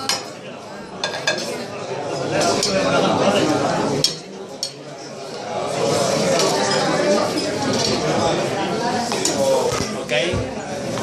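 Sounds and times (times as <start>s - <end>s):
plates and spoon clinking: 0.0s - 3.0s, 4.0s - 5.1s
murmur of chatter: 0.0s - 11.0s.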